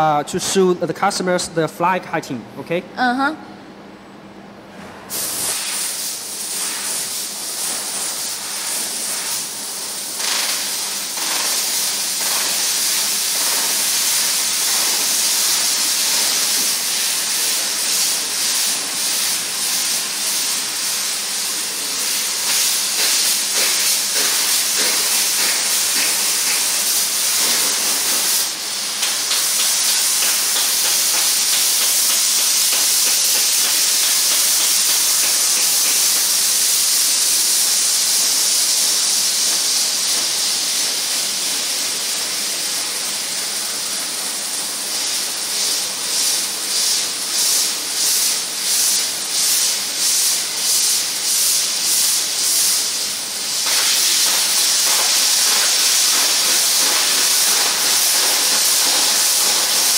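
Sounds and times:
laser cutter gas hiss: 0:05.1 - 0:59.9.

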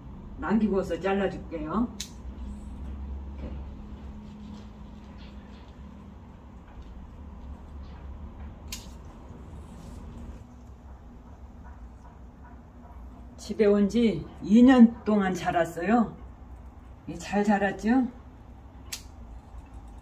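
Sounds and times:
low steady hum: 0:00.0 - 0:20.0
pruning shears blades clicking: 0:18.9 - 0:19.1.

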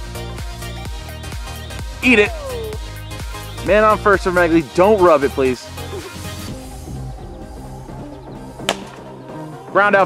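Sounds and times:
background music: 0:00.0 - 0:10.0
plastic bat hitting ball: 0:08.7 - 0:09.0.

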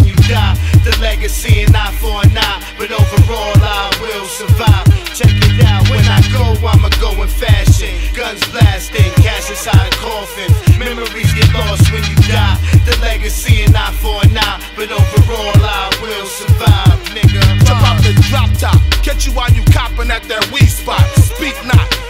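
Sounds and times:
bass line: 0:00.0 - 0:22.0
hip hop drum beat: 0:00.0 - 0:22.0
vocals: 0:00.0 - 0:22.0.

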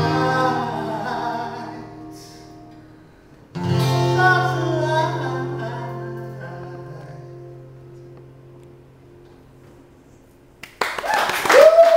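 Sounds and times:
hand clapping: 0:10.6 - 0:11.9.

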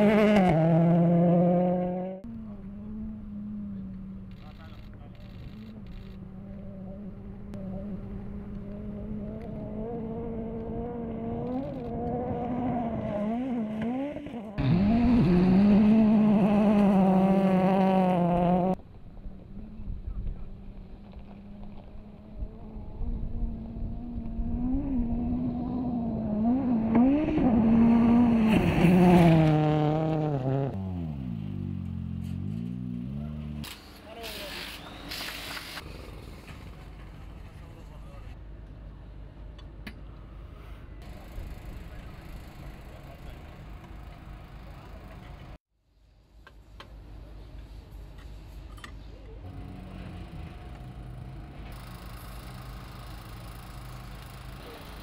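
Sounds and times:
rally car engine revving: 0:00.0 - 0:18.8, 0:20.5 - 0:33.6.

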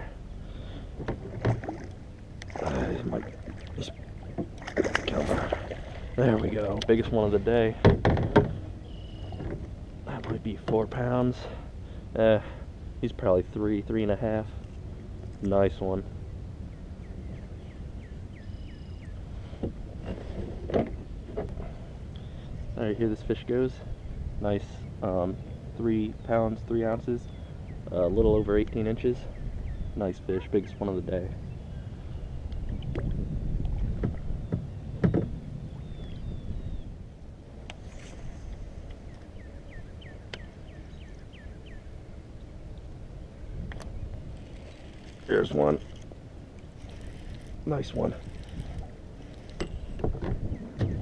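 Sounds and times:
water around kayak: 0:00.0 - 0:51.0
wind rumbling on microphone: 0:14.8 - 0:51.0.

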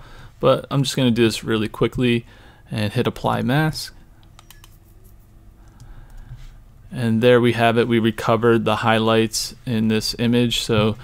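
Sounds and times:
low steady hum: 0:00.0 - 0:11.0
computer mouse and key clicks: 0:04.2 - 0:06.4.

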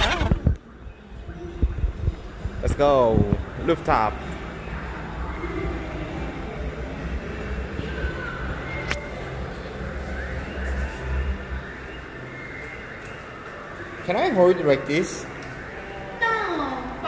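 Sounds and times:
faint music: 0:00.0 - 0:17.0.

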